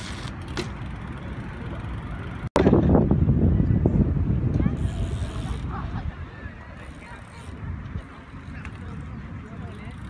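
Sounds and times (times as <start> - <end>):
traffic noise: 0.0 - 10.0.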